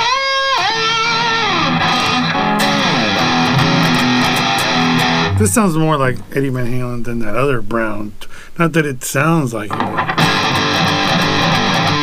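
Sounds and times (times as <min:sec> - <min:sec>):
distorted electric guitar notes: 0:00.0 - 0:06.7, 0:09.7 - 0:12.0.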